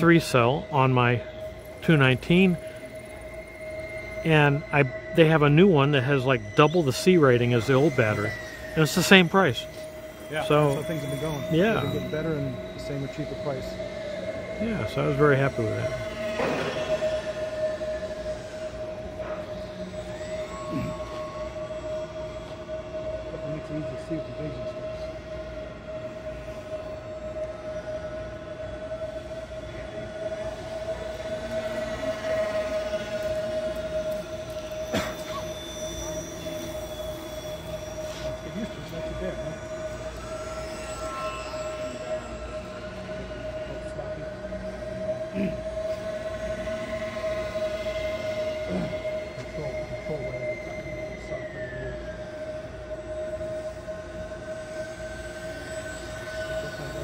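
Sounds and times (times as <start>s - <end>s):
model plane motors whining: 0.0s - 57.0s
steady hum: 0.0s - 57.0s.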